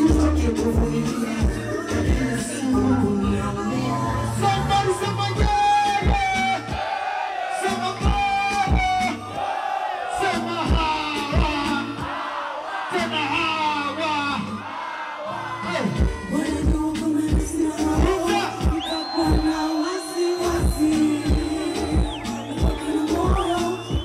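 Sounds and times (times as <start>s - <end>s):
person singing: 0.0s - 5.1s, 15.9s - 24.0s
bass: 0.0s - 6.8s, 7.8s - 9.4s, 10.3s - 12.1s, 15.5s - 19.8s, 20.4s - 24.0s
kick drum beat: 5.4s - 6.4s, 8.0s - 9.0s, 10.7s - 11.7s, 15.9s - 19.8s, 20.4s - 24.0s.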